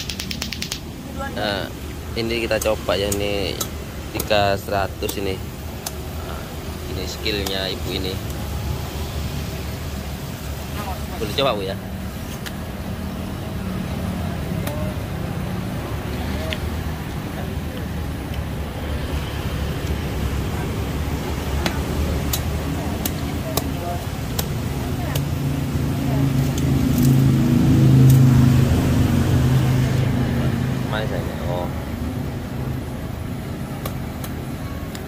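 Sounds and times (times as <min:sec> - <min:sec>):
sharp clicks: 0:00.0 - 0:00.9
road traffic rumble: 0:00.0 - 0:35.0
vehicle engine passing: 0:06.1 - 0:34.8.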